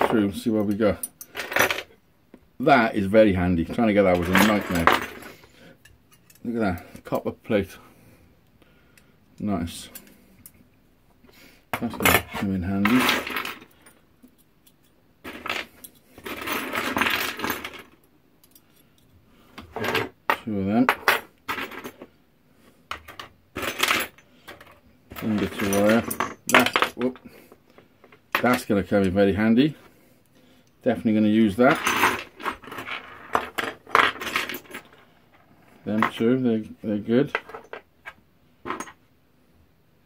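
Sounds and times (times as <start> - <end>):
metal pieces clinking: 22.9 - 27.3.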